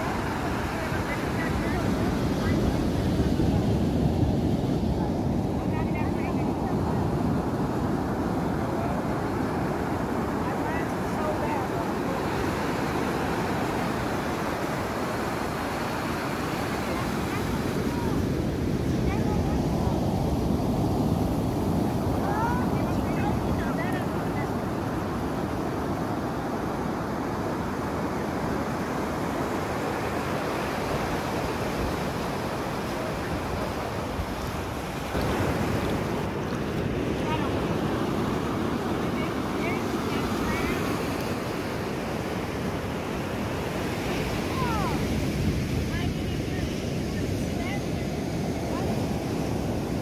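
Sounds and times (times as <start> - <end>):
ocean waves breaking on beach: 0.0 - 50.0.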